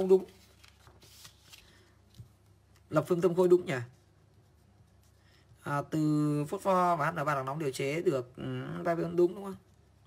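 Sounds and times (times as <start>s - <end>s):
paper sheets rustling: 0.0s - 4.1s.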